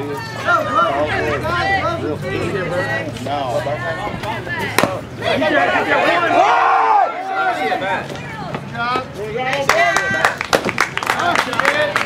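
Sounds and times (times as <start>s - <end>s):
spectators talking and shouting: 0.0s - 12.0s.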